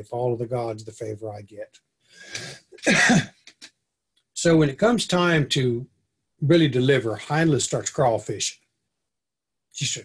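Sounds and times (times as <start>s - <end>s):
man coughing: 2.4s - 3.4s.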